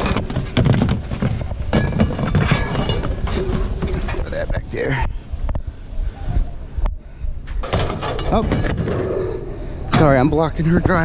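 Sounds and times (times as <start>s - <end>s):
junk scraping and rustling: 0.0s - 4.8s, 7.5s - 11.0s.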